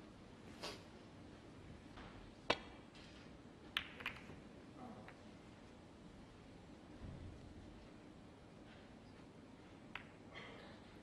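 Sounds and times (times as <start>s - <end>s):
snooker balls clicking together: 3.7s - 4.4s, 9.8s - 10.3s.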